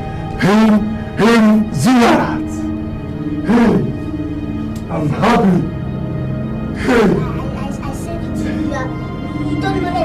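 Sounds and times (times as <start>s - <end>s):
film music of held tones: 0.0s - 10.0s
loud wordless cry: 0.4s - 7.6s.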